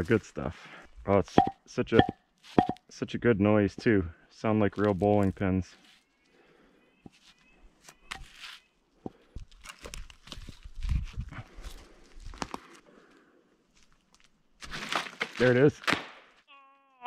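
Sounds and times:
wood knocking: 1.4 - 2.8.

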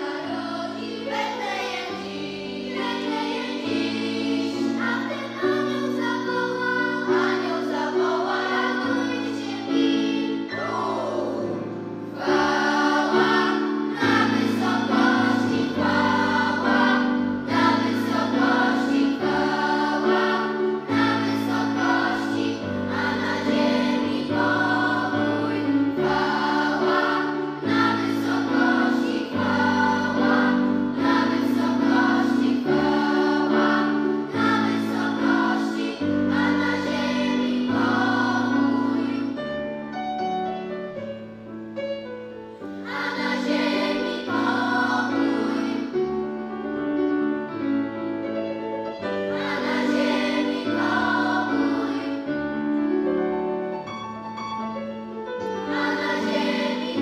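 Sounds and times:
children's choir singing: 0.0 - 39.9, 42.5 - 47.9, 48.6 - 53.6, 55.2 - 57.0
piano accompaniment: 0.0 - 57.0.

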